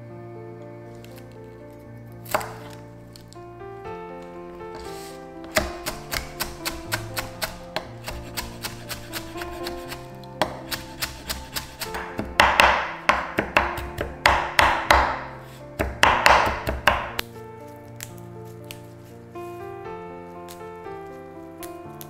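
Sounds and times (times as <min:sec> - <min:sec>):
soft background music: 0:00.0 - 0:22.0
knife chopping on wooden board: 0:02.3 - 0:02.8, 0:05.4 - 0:17.2.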